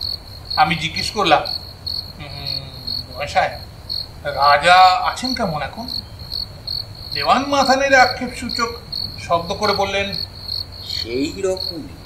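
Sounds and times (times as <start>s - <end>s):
crickets chirping: 0.0s - 12.0s
man speaking: 0.6s - 1.6s, 2.2s - 3.6s, 4.3s - 6.0s, 7.2s - 10.2s, 10.8s - 12.0s.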